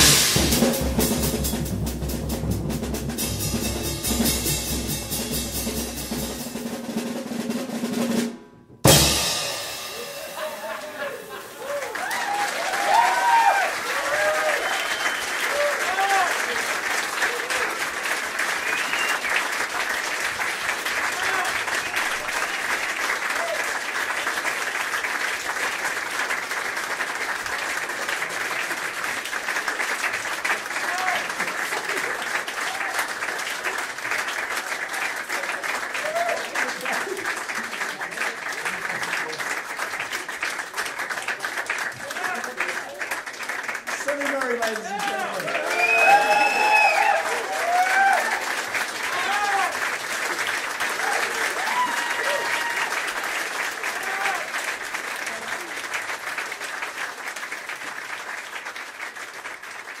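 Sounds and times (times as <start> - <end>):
audience applauding: 9.8 - 60.0
whoops and shouts: 10.0 - 16.3, 36.0 - 36.5, 45.0 - 48.4, 49.1 - 49.8, 51.0 - 52.9.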